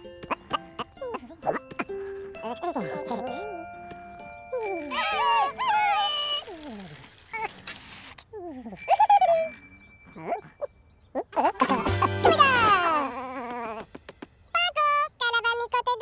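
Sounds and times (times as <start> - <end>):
light cartoon music: 0.0 - 6.9, 11.2 - 16.0
bell-like chimes: 4.1 - 5.7, 8.8 - 10.8
high gliding character voices: 4.5 - 10.6.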